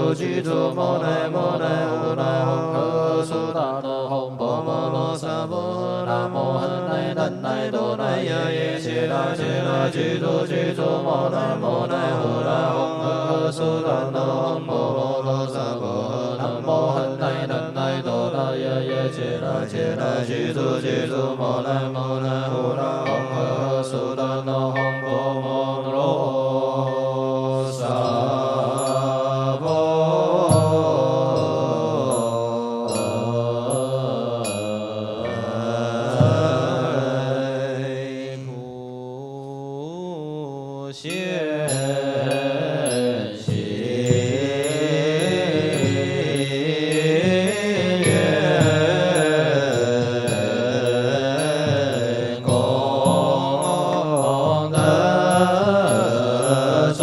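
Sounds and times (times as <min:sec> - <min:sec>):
monks chanting: 0:00.0 - 0:57.0.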